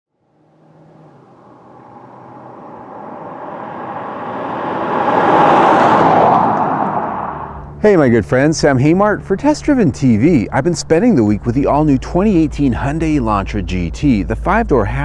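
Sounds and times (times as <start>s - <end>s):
car driving past: 0.2s - 8.0s.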